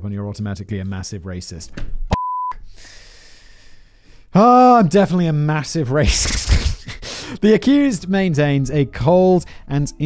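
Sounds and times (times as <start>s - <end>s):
censor bleep tone: 2.1s - 2.6s.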